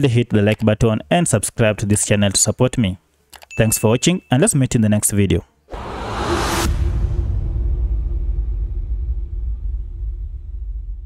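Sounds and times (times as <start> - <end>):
deep low rumble: 5.7 - 11.0.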